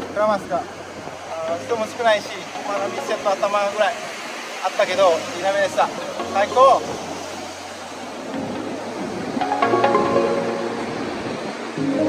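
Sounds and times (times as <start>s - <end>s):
ocean surf on beach: 0.0s - 12.0s.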